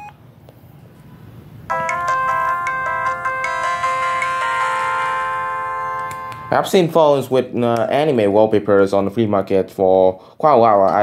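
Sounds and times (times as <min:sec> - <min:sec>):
phone power-off melody: 0:00.0 - 0:00.2, 0:01.7 - 0:06.7.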